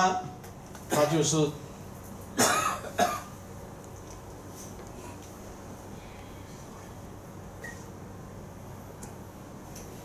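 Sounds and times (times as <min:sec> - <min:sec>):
person coughing: 0:00.9 - 0:01.2, 0:02.4 - 0:03.3.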